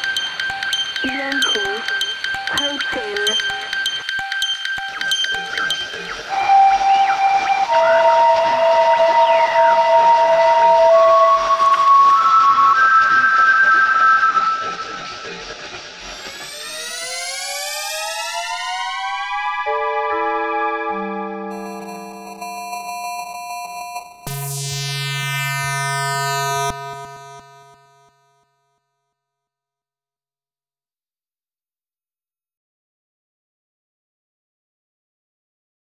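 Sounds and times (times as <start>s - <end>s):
analog synthesizer music: 0.0s - 22.9s, 24.0s - 28.5s
low buzzy synth tone: 24.2s - 28.5s.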